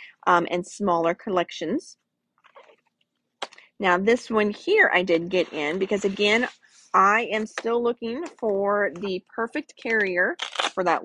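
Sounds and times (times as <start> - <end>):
woman speaking: 0.0 - 2.0, 3.6 - 11.0.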